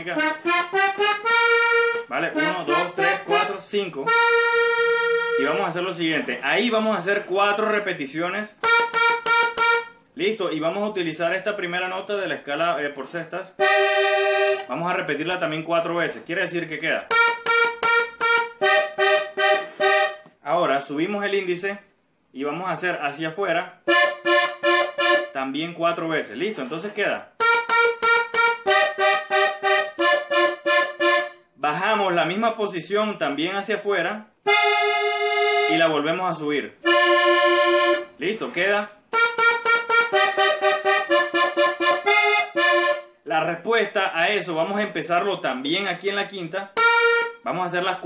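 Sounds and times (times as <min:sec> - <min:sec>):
button accordion treble notes: 0:00.1 - 0:05.8, 0:08.6 - 0:10.1, 0:13.6 - 0:14.7, 0:17.1 - 0:20.3, 0:23.9 - 0:25.4, 0:27.4 - 0:31.4, 0:34.4 - 0:35.9, 0:36.8 - 0:38.2, 0:39.1 - 0:43.2, 0:46.8 - 0:47.5.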